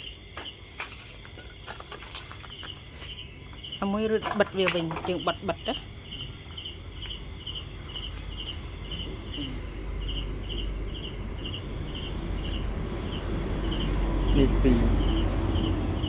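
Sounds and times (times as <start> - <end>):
cricket chirping: 0.0 - 16.0.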